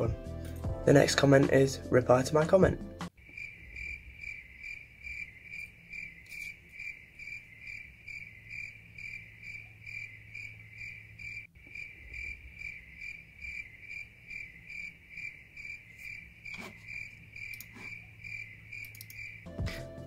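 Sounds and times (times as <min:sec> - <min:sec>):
cricket chirping: 0:03.2 - 0:19.8.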